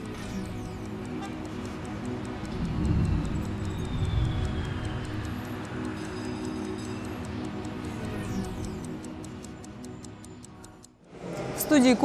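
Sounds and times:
fast ticking beat: 0:00.0 - 0:11.0.

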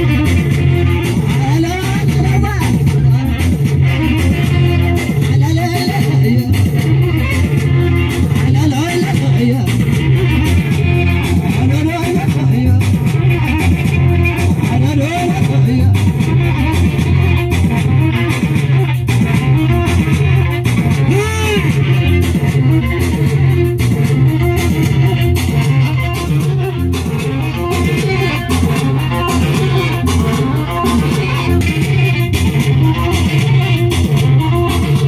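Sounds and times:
bass line and beat: 0:00.0 - 0:35.0
plucked string lead riff: 0:00.0 - 0:35.0.

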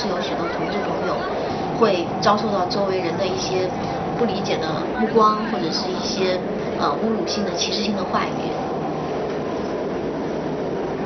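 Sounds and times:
subway train running: 0:00.0 - 0:11.0.

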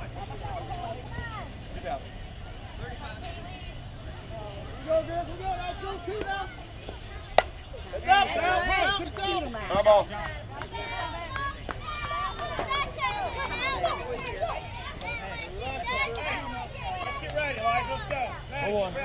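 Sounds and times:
people shouting and cheering: 0:04.6 - 0:19.0
sharp crack: 0:07.4 - 0:07.6.

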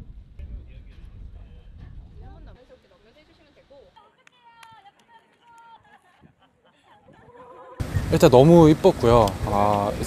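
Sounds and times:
people calling out and laughing: 0:03.9 - 0:08.2.

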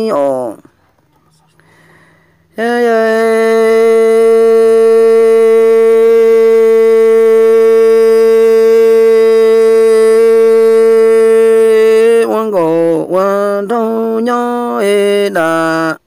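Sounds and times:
person holding long sung note: 0:01.3 - 0:16.0.

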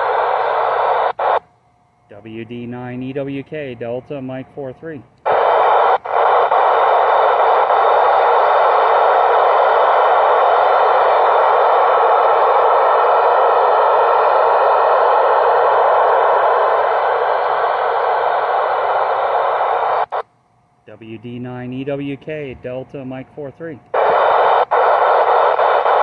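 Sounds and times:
radio static hiss: 0:00.0 - 0:01.5, 0:02.1 - 0:20.3, 0:20.9 - 0:26.0.

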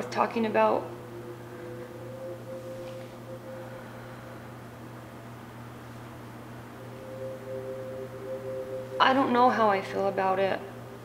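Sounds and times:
soft held chord music: 0:00.0 - 0:11.0.

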